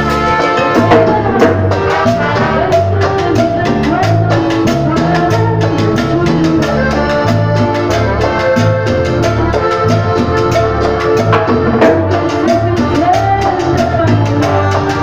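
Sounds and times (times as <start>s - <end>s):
trumpets: 0.0s - 3.0s
drum kit with timbales: 0.0s - 15.0s
electric bass: 0.0s - 15.0s.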